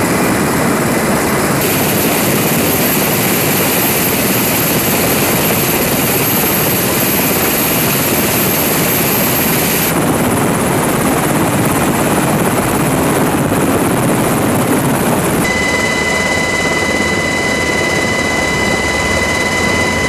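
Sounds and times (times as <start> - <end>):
helicopter engines and rotor: 0.0 - 20.0.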